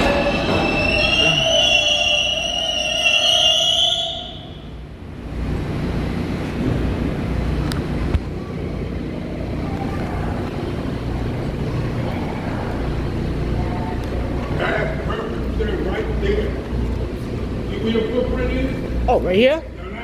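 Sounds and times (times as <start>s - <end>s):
subway train rumbling on tracks: 0.0s - 20.0s.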